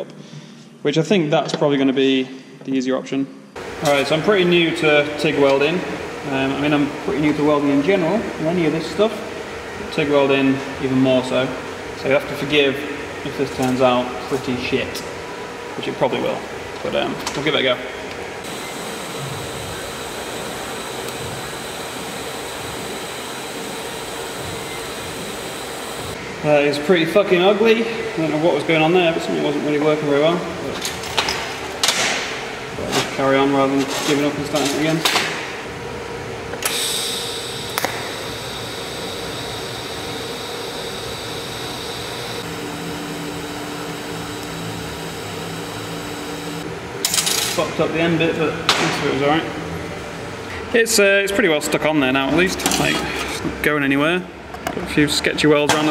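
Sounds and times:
welding arc hiss: 18.4 - 26.2, 36.6 - 46.6.

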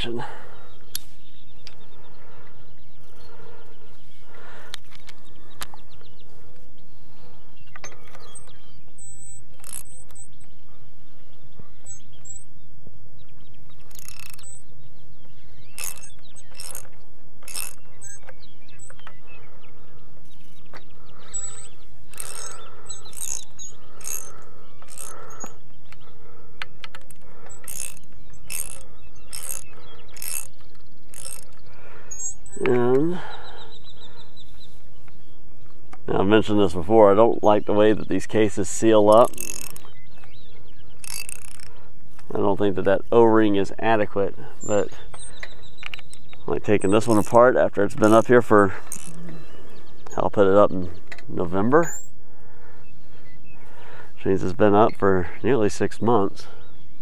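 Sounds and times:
socket ratchet clicking: 9.1 - 10.3, 13.8 - 14.6, 15.7 - 19.1, 21.3 - 25.5, 26.6 - 32.6, 39.1 - 42.2, 45.2 - 47.3, 47.9 - 49.4.

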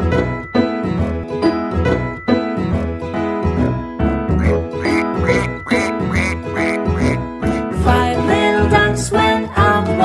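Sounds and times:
children's song music: 0.0 - 10.0
duck quacking: 4.3 - 7.3.

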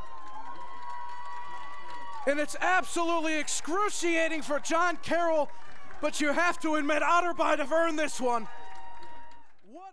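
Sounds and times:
crowd cheering: 0.0 - 9.9.

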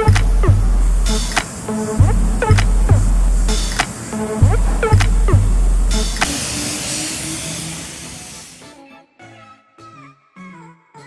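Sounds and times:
bright hiss: 0.0 - 4.4, 5.8 - 8.7
music with sliding notes: 0.0 - 7.4.

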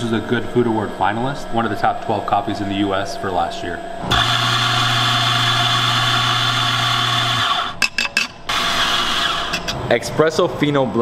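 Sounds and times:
coffee grinder running: 4.1 - 7.8, 8.5 - 9.8.

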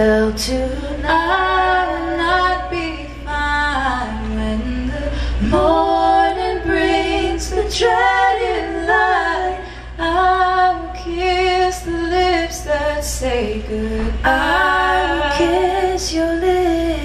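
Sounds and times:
women singing lullaby duet: 0.0 - 17.0.

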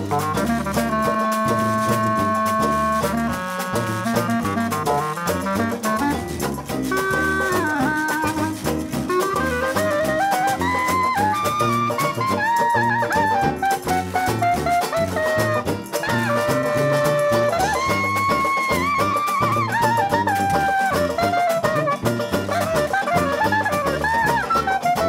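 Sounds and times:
clarinet solo: 0.0 - 25.0
jazz band playing: 0.0 - 25.0
sousaphone bass line: 0.0 - 25.0
steady drum beat: 0.0 - 25.0.

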